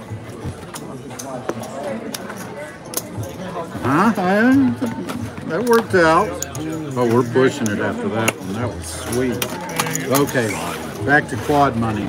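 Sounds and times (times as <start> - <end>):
faint background chatter: 0.0 - 12.0.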